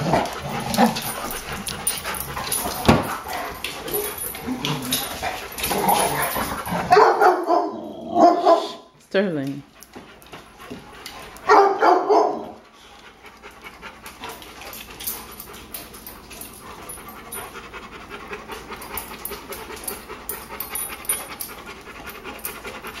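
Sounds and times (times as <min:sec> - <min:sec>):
claws clicking on tile floor: 0:00.0 - 0:06.9, 0:09.5 - 0:11.9, 0:13.0 - 0:17.6, 0:18.2 - 0:23.0
dogs panting: 0:00.0 - 0:07.8, 0:08.4 - 0:23.0
dog barking outburst: 0:06.8 - 0:08.8, 0:11.5 - 0:12.6.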